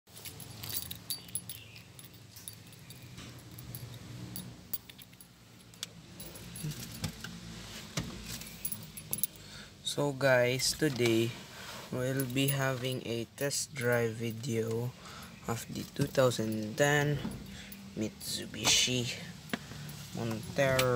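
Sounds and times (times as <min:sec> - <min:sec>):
light metallic jingling: 0:00.1 - 0:07.3, 0:08.2 - 0:20.9
low steady hum: 0:00.2 - 0:20.9.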